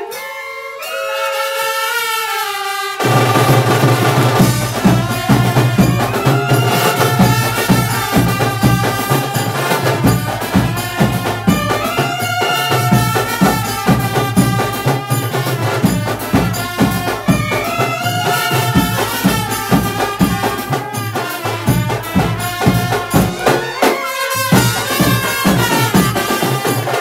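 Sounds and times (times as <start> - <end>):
brass band playing melody: 0.0 - 27.0
drums fast beat: 3.0 - 27.0.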